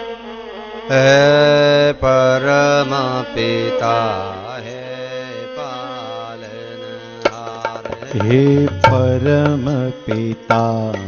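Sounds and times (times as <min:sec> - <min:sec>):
sustained instrumental accompaniment: 0:00.0 - 0:11.0
man chanting: 0:00.9 - 0:11.0.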